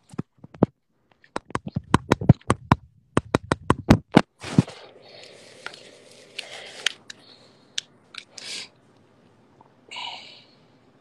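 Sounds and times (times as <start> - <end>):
fingers tapping on phone: 1.3 - 4.3.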